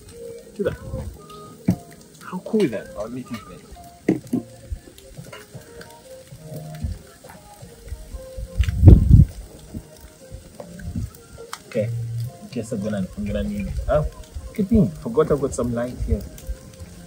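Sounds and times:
meat sizzling on a grill: 0.0s - 17.0s.

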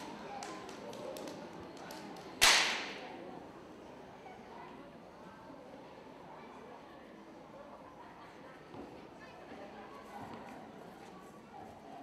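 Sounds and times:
sharp crack: 2.4s - 3.0s.

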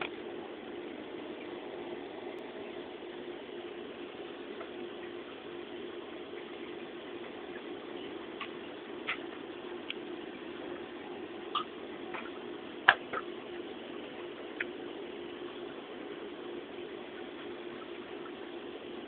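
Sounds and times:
low background hum: 0.0s - 19.0s.

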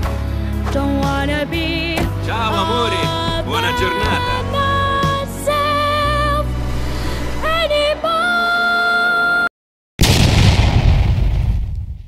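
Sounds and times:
shotgun shot: 10.0s - 12.0s.

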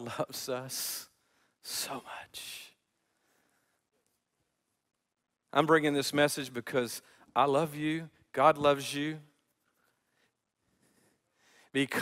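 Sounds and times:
man speaking into headset microphone: 0.0s - 2.8s, 5.5s - 9.6s, 11.7s - 12.0s.

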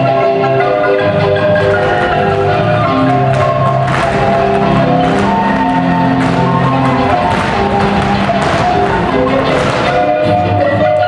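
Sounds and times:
dancers' footwork taps: 1.2s - 11.0s.

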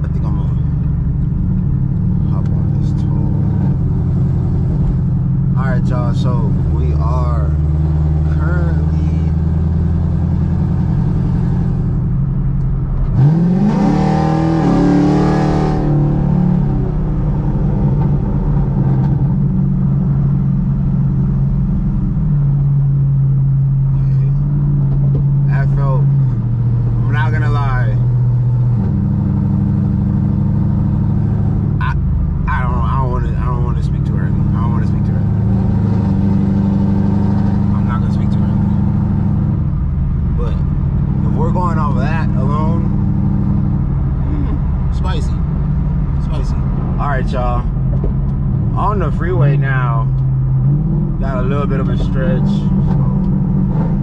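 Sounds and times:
car engine from inside cabin: 0.0s - 54.0s.

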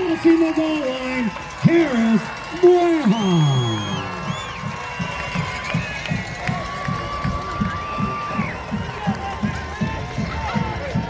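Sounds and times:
stadium crowd murmur: 0.0s - 11.0s.

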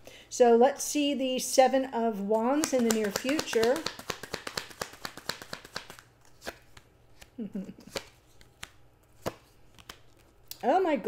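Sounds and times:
cards being shuffled by hand: 2.2s - 10.8s.

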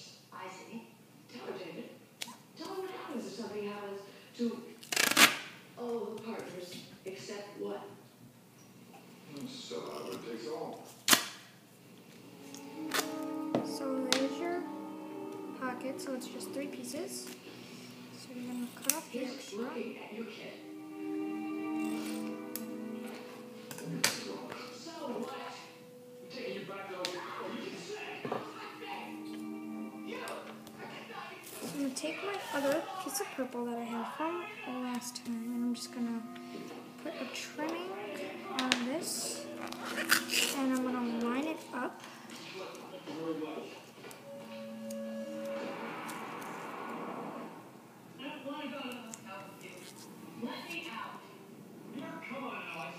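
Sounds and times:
television voice: 0.0s - 11.2s, 12.1s - 52.9s
scissors cutting duct tape: 4.8s - 5.4s
background music with held tones: 11.9s - 48.4s.

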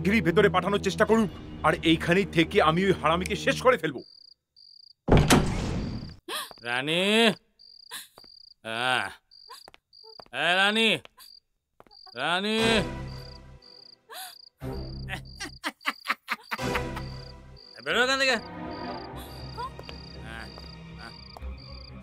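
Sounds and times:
crickets chirping: 3.8s - 5.0s, 5.8s - 22.0s
man taunting calls: 8.6s - 9.2s, 12.1s - 13.0s, 20.2s - 21.3s
man laughing: 15.1s - 17.3s.

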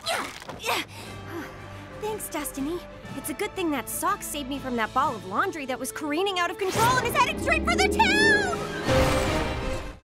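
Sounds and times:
background music: 0.1s - 10.0s.

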